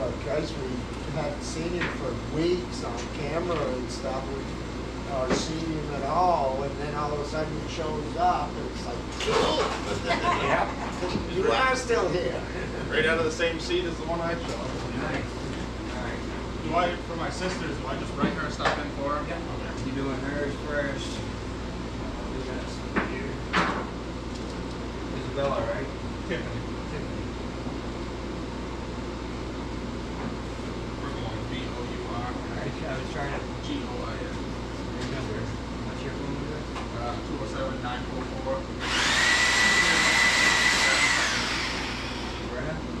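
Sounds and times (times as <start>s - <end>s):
low machine hum: 0.0s - 43.0s
small electric tool whirring: 38.8s - 42.5s.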